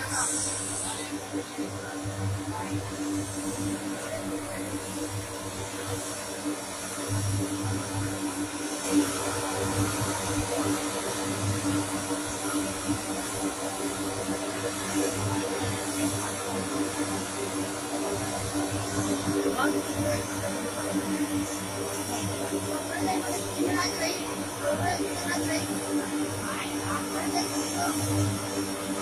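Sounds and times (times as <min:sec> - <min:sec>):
turboprop engines droning: 0:00.0 - 0:29.0.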